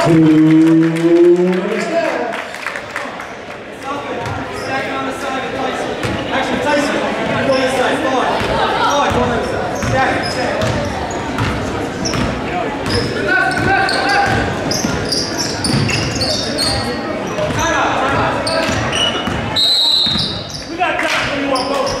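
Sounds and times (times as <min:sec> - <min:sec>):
spectator chatter and calls: 0:00.0 - 0:22.0
shoe squeaks: 0:12.9 - 0:17.8, 0:18.4 - 0:20.8, 0:21.5 - 0:22.0.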